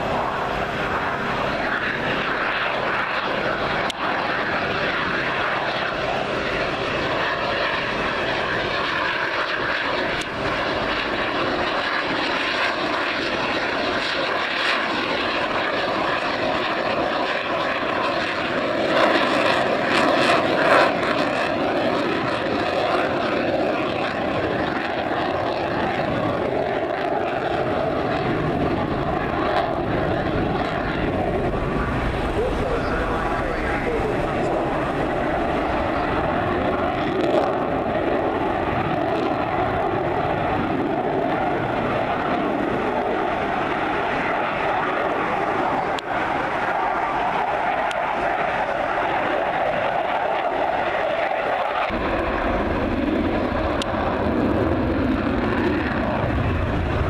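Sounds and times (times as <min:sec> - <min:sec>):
fighter jet engine roar: 0:00.0 - 0:57.0.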